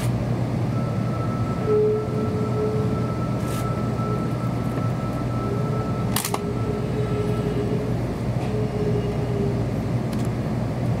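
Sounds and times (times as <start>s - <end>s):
train cabin hum: 0.0s - 11.0s
faint whine: 0.5s - 10.2s.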